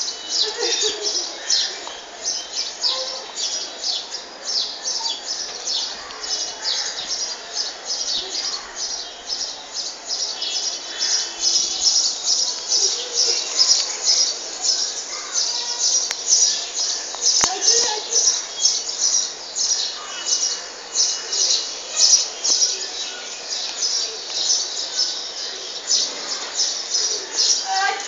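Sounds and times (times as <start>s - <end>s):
birds chirping: 0.0s - 28.0s.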